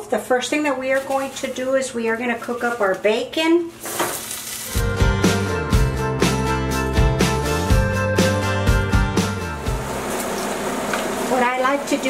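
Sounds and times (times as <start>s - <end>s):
background music with a beat: 4.8s - 9.8s.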